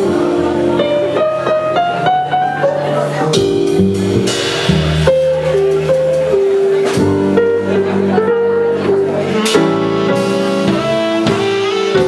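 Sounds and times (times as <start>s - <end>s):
jazz combo playing: 0.0s - 12.0s.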